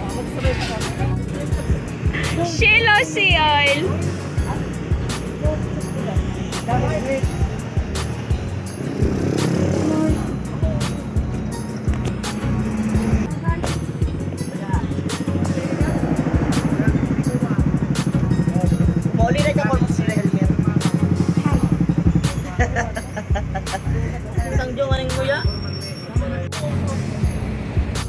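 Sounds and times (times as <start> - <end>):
scooter engine idling: 0.0 - 25.2
background music with steady beat: 0.0 - 28.0.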